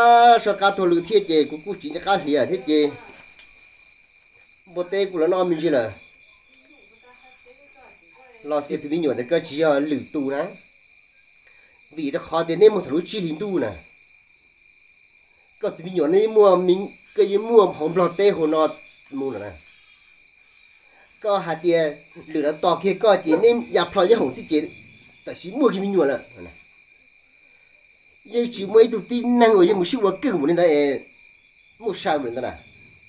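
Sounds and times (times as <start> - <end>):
man speaking: 0.0 - 3.2, 4.7 - 6.0, 8.4 - 10.6, 11.9 - 13.9, 15.6 - 19.6, 21.2 - 26.6, 28.3 - 31.1, 31.8 - 32.6
man's voice: 0.0 - 3.2, 21.3 - 26.6
crickets trilling: 0.0 - 33.0.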